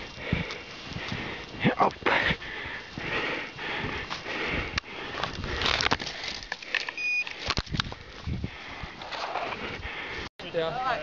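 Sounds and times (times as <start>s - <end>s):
short high beep: 7.0s - 7.3s.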